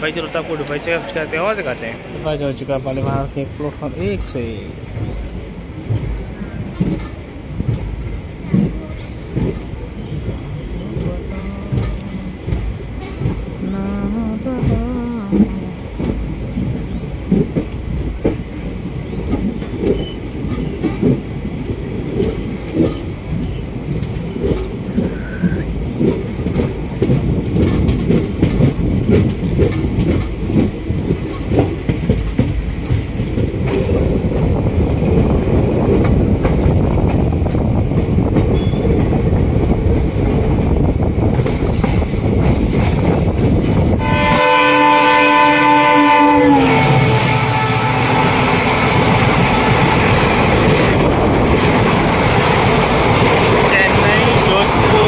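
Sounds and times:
passing train coaches rushing: 0.0s - 55.0s
train wheels clacking over rail joints: 0.0s - 55.0s
train horn: 44.0s - 50.2s.

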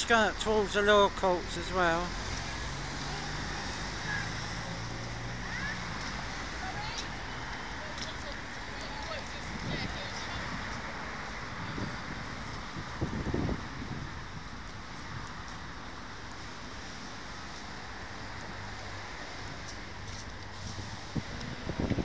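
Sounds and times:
street noise: 0.0s - 22.0s
wind buffeting microphone: 8.0s - 15.5s, 20.5s - 22.0s.

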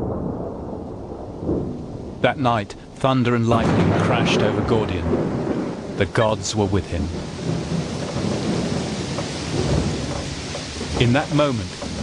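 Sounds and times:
rolling thunder: 0.0s - 12.0s.

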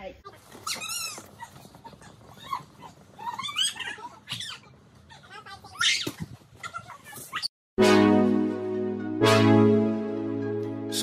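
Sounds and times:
children squealing and shouting: 0.6s - 7.5s.

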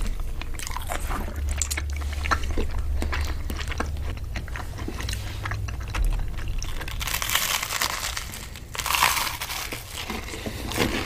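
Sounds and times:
close-up chewing: 0.0s - 11.0s
crisp bread crunches: 0.0s - 11.0s.

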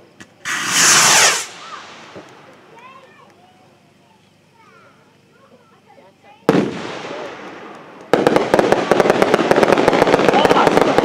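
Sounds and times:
model rocket motor hissing: 0.4s - 2.4s.

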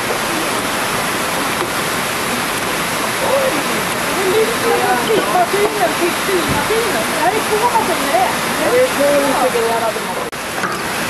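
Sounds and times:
faint voices: 0.0s - 10.4s.

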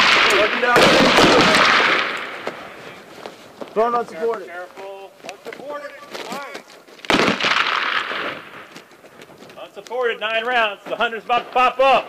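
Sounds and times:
body dropping onto gravel: 5.2s - 7.3s.

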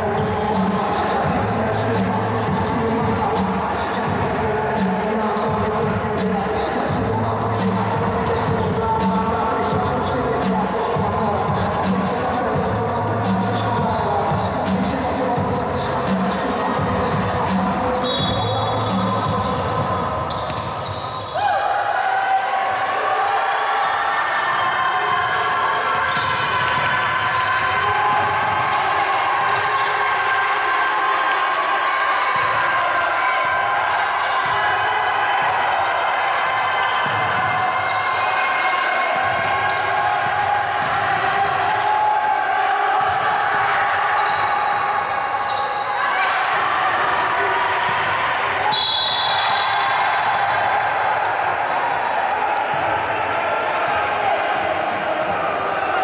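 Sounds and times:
din of voices: 0.0s - 20.4s
players shouting: 0.0s - 56.0s
basketball bouncing on court: 16.8s - 21.6s, 39.0s - 41.9s.

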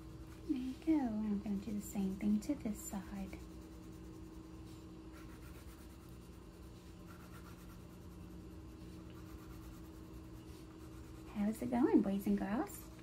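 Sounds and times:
steady low hum: 0.0s - 13.0s
crayon rubbing on paper: 1.4s - 13.0s.

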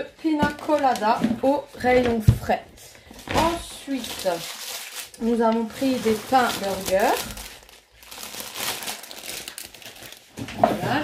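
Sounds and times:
plastic bag crinkling: 3.2s - 11.0s.

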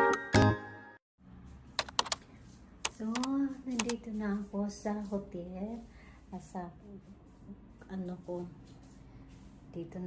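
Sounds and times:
sharp clicks: 1.8s - 2.2s, 2.9s - 4.0s.

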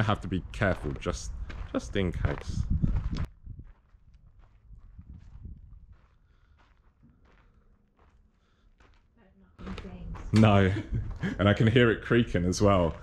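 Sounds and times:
footsteps on concrete: 0.6s - 11.8s, 12.4s - 13.0s.

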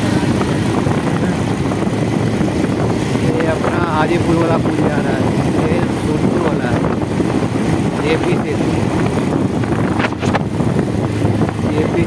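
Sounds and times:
motorcycle engine running: 0.0s - 12.0s
wind rush on microphone: 0.0s - 12.0s.

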